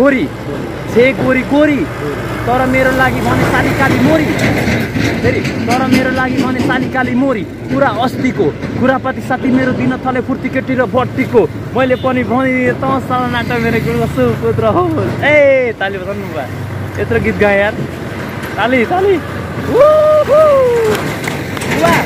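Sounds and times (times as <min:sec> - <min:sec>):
low hum of road traffic: 0:00.0 - 0:22.0
men talking: 0:00.0 - 0:22.0.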